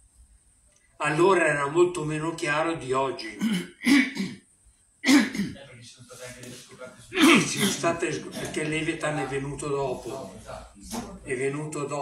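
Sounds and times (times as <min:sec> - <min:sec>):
man coughing and clearing throat: 0:03.3 - 0:05.7, 0:07.1 - 0:08.8.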